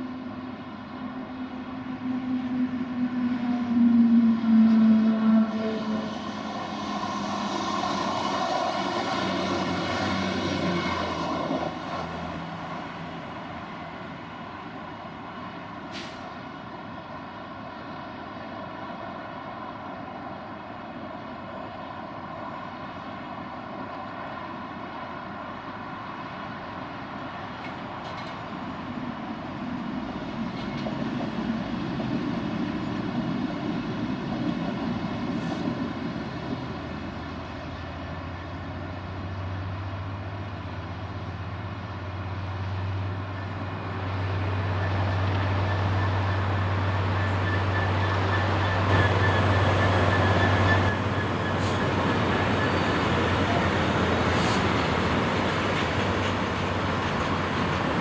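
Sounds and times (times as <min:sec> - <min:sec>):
diesel locomotive engine drone: 0:00.0 - 0:58.0
diesel train passing: 0:00.0 - 0:58.0
rush of carriages passing: 0:00.0 - 0:58.0.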